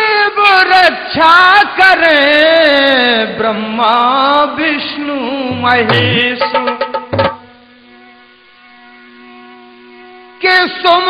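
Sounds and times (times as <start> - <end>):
person singing folk song: 0.0 - 7.2, 10.4 - 11.0.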